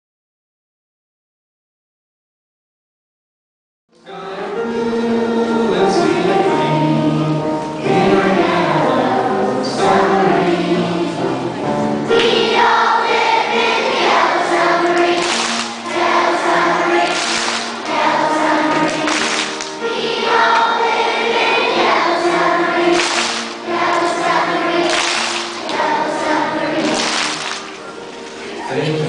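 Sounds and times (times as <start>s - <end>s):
children singing in unison: 4.0s - 29.0s.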